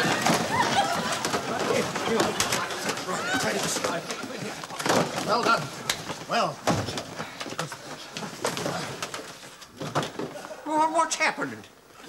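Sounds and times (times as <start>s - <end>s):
studio audience laughing: 0.0s - 3.6s
cardboard boxes clattering: 0.0s - 10.5s.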